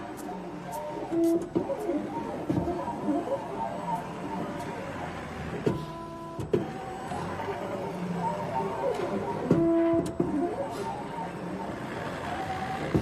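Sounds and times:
machine motors whining: 0.0 - 13.0.

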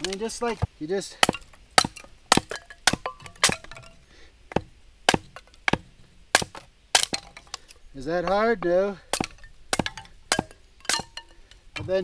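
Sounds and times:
hatchet chopping kindling: 0.0 - 12.0.

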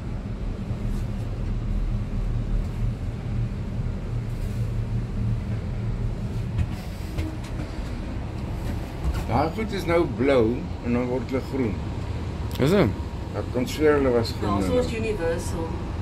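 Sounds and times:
cable car gondola hum: 0.0 - 16.0.

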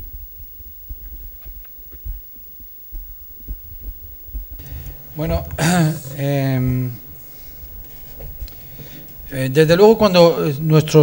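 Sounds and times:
microphone hiss and hum: 0.0 - 11.0
microphone handling thumps: 3.5 - 10.2.

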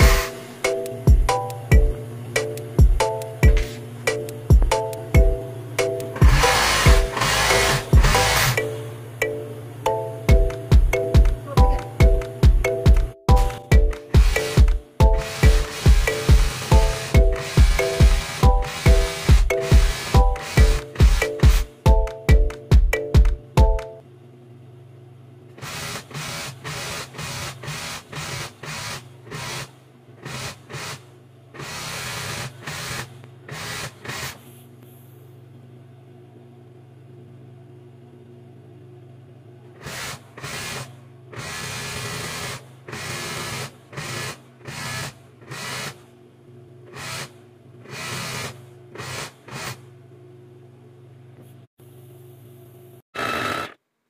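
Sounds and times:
overlock sewing machine stitching: 0.0 - 0.5, 6.1 - 8.8, 13.4 - 21.7, 25.6 - 31.0, 31.6 - 34.5, 39.8 - 46.0, 46.9 - 49.8, 53.2 - 53.8
steady low hum: 0.0 - 53.0.

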